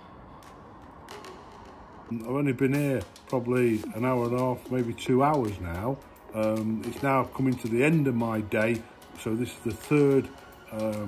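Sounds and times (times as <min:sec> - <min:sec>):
low background noise: 0:00.0 - 0:11.0.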